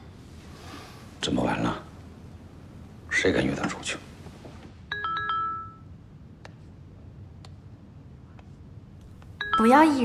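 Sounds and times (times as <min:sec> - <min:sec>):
phone message chime: 0:09.4 - 0:10.0.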